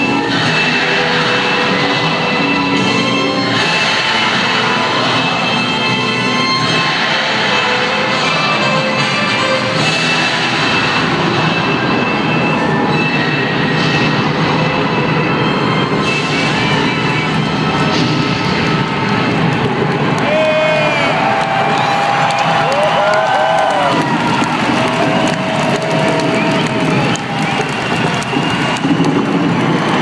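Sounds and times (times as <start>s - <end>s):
live rock music droning: 0.0s - 20.3s.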